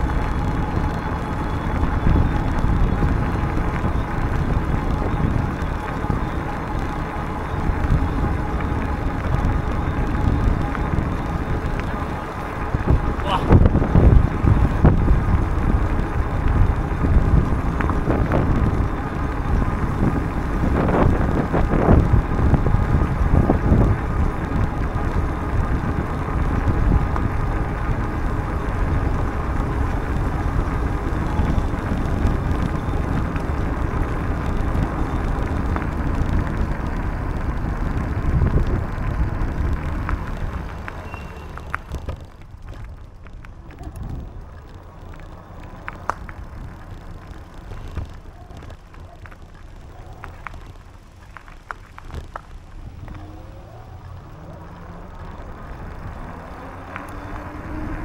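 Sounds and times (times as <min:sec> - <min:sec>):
bicycle tyres on pavement: 0:00.0 - 0:58.0
wind rushing over microphone: 0:00.0 - 0:58.0.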